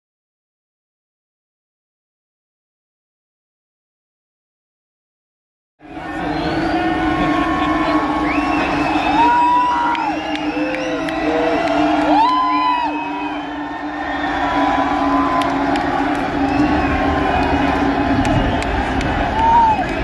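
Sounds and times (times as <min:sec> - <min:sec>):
crowd cheering and whooping: 0:05.8 - 0:20.0
low steady music drone: 0:05.8 - 0:20.0.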